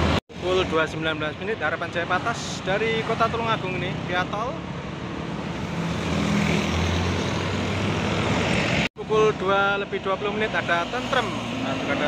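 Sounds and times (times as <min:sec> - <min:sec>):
tyre and road noise: 0:00.0 - 0:12.0.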